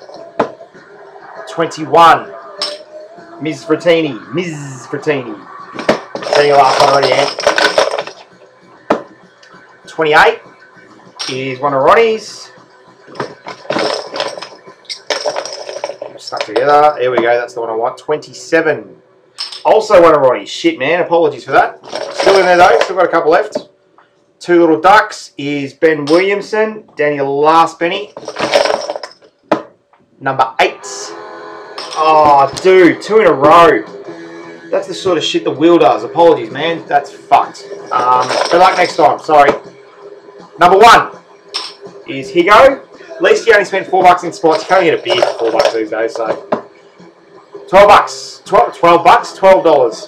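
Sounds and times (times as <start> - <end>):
lids rattling in a box: 5.8 - 8.2, 13.1 - 16.6, 21.8 - 22.9, 28.2 - 29.2.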